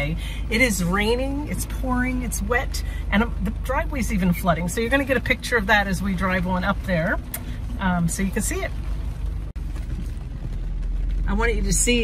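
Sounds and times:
truck engine and road rumble: 0.0s - 12.0s.

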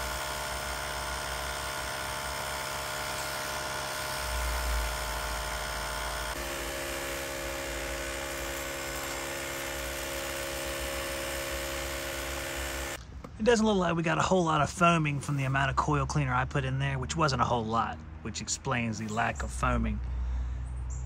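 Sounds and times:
electric sprayer pump whining: 0.0s - 13.0s.

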